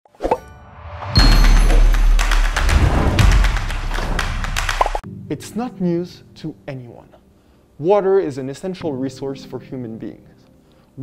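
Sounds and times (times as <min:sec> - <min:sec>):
rising whoosh: 0:00.6 - 0:05.0
loud hit: 0:00.7 - 0:05.0
music with deep bass and clicks: 0:01.2 - 0:05.0.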